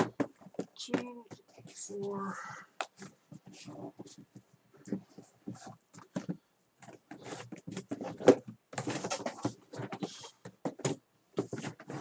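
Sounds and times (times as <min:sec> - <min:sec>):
cardboard boxes tapping and knocking: 0:00.0 - 0:02.2, 0:02.8 - 0:12.0
boxes sliding and scraping: 0:07.0 - 0:10.4, 0:11.4 - 0:12.0.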